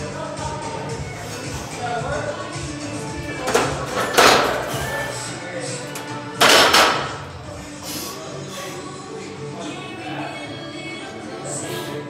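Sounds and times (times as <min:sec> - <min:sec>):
gym background music: 0:00.0 - 0:12.0
loud rushing breaths: 0:00.9 - 0:02.0, 0:07.3 - 0:09.3.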